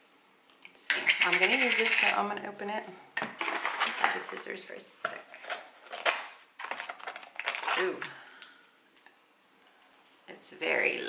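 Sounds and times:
crinkling and clicking of lid: 5.1s - 8.5s.

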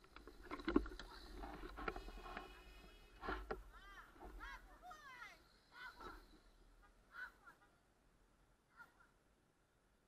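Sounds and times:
faint bird calls: 3.7s - 7.8s.

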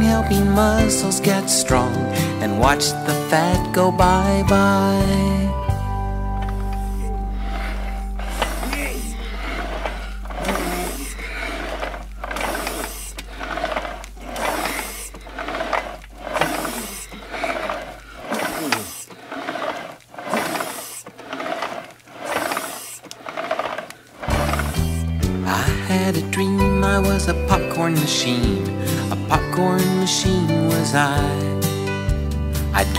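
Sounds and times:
backing music: 0.0s - 12.7s, 24.3s - 32.9s
rowing machine swishing strokes: 6.4s - 25.8s.

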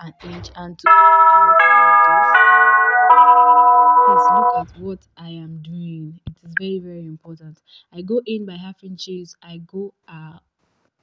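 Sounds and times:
people talking: 0.0s - 0.9s, 4.0s - 10.4s
electronic chime tune: 0.9s - 4.7s.

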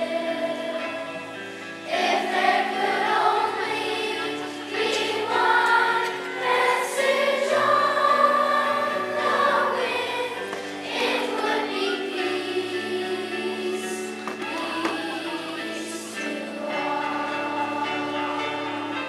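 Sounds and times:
children's choir singing: 0.0s - 19.0s
instrumental accompaniment: 0.0s - 19.0s.

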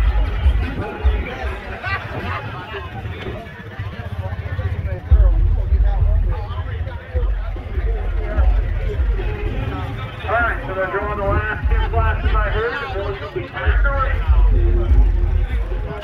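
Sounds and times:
people talking: 0.0s - 16.0s
heavy low rumble: 4.4s - 16.0s.

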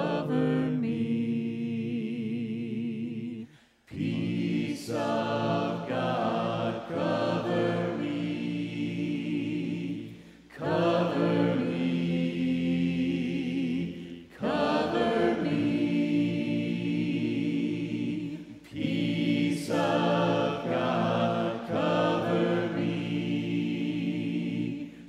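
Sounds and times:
congregation singing a hymn: 0.0s - 25.0s.

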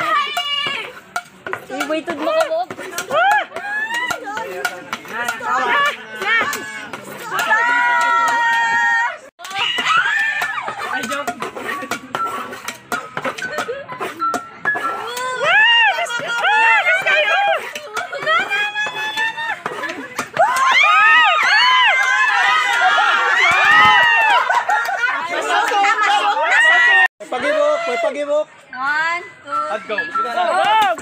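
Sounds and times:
people shouting excitedly: 0.0s - 1.0s, 1.9s - 11.1s, 15.0s - 28.3s.

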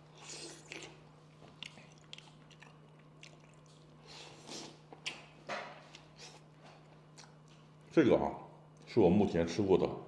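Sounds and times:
wet chewing mouth clicks: 0.2s - 5.3s, 7.1s - 7.6s.

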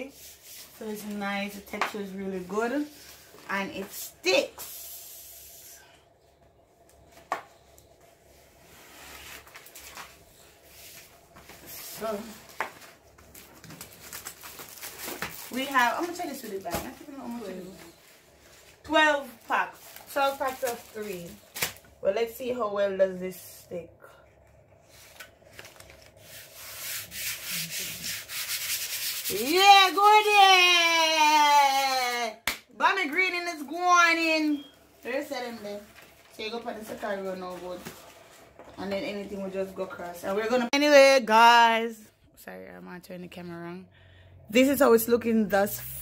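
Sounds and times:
paper rustling: 8.8s - 21.8s, 24.8s - 29.3s
hand rubbing paper on board: 26.2s - 29.7s.

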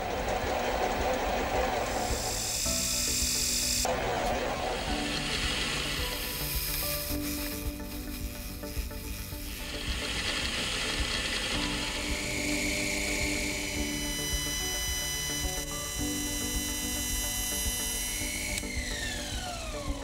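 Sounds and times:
lathe tool turning brass: 0.0s - 20.0s
slitting saw cutting metal: 0.0s - 20.0s
soft background music: 0.0s - 20.0s.

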